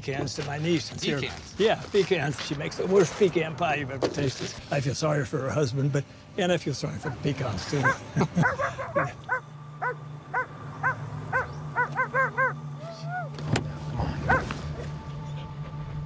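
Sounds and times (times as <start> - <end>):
dog barking: 7.0 - 12.6, 14.2 - 14.9
dog whining: 7.0 - 13.4.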